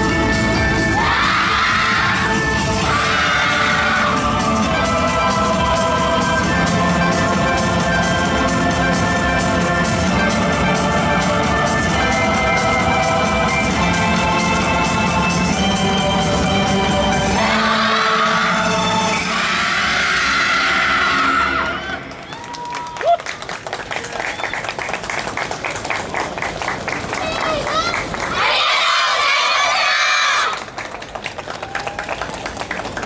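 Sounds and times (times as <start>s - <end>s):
dance music: 0.0s - 22.1s.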